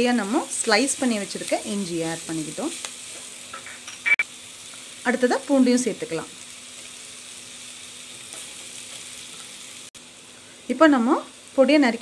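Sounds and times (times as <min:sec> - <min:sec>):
food sizzling in oil: 0:00.0 - 0:12.0.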